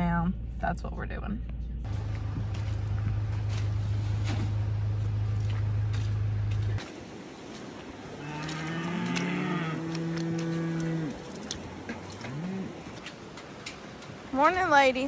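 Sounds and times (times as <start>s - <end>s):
low hum: 0.0s - 6.9s
cattle mooing: 8.2s - 11.4s, 12.1s - 13.0s.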